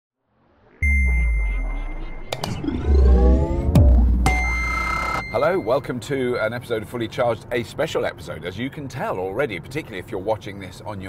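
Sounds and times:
rising swooshing glides: 0.4s - 5.0s
sharp electronic hits: 0.7s - 5.5s
held high ping: 0.8s - 2.7s, 3.8s - 6.0s
deep bass hit: 0.8s - 4.9s.

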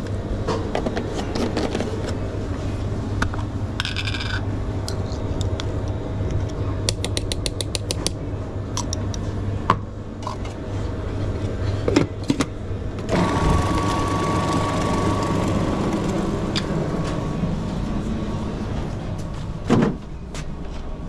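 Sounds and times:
low hum: 12.5s - 21.0s
food processor motor running: 13.1s - 17.3s.

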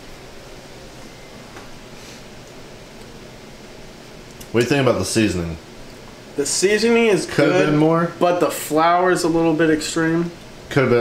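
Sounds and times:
room background hiss: 0.0s - 11.0s.

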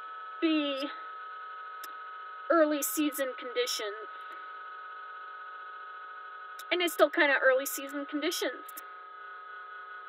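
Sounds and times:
steady room hum: 0.0s - 10.0s.

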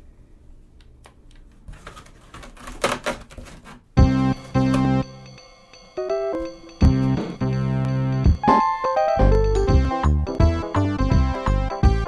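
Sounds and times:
electronic keyboard chords: 4.0s - 12.0s.

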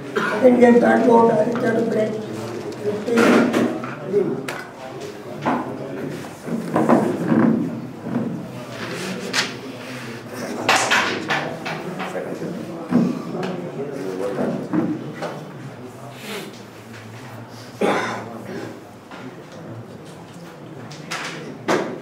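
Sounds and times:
voices talking: 0.0s - 6.3s.

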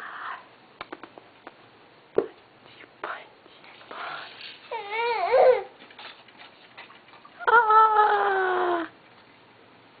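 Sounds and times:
baby wailing: 4.7s - 5.8s.

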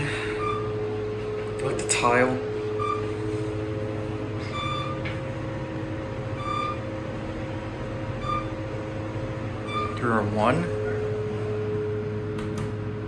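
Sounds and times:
elevator ride hum: 0.0s - 13.0s.

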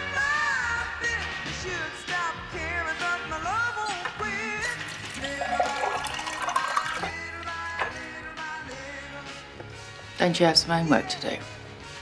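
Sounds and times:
background music: 0.0s - 12.0s
water running into sink: 4.6s - 8.0s.

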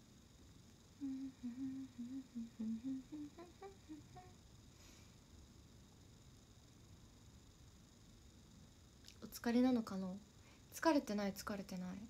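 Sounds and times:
woman humming a melody: 1.0s - 4.4s.

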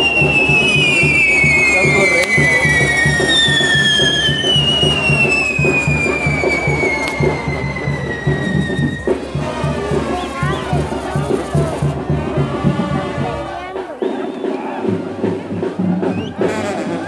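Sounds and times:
fireworks whistling: 0.0s - 12.0s, 14.0s - 14.9s.

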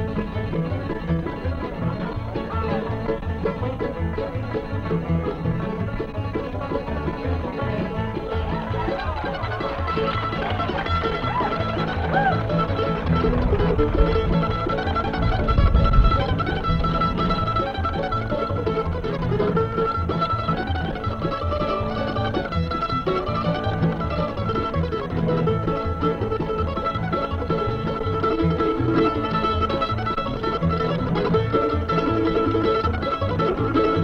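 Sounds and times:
bluegrass band playing: 0.0s - 34.0s
low bump: 0.0s - 34.0s.

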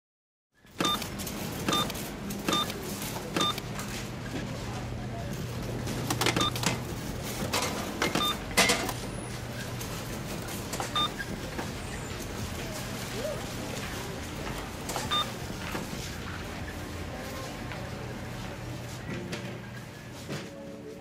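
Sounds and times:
barcode scanner beeping: 0.8s - 1.1s, 1.7s - 2.8s, 3.4s - 3.6s, 6.3s - 6.7s, 8.0s - 8.5s, 10.9s - 11.4s, 15.1s - 15.4s.

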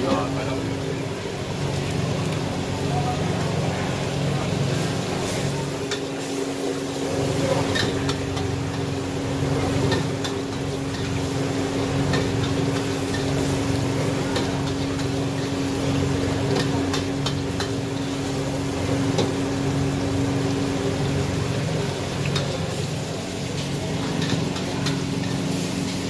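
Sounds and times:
frying sizzle: 0.0s - 26.0s
gas burner roaring: 0.0s - 26.0s.

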